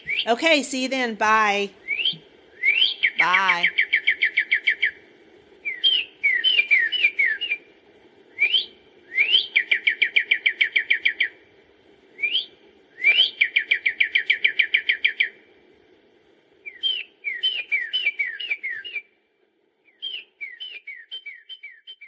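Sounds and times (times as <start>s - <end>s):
bird whistling downslurred notes: 0.0s - 0.3s, 1.8s - 5.0s, 5.6s - 7.7s, 8.4s - 11.4s, 12.2s - 15.4s, 16.7s - 19.1s, 19.9s - 22.0s.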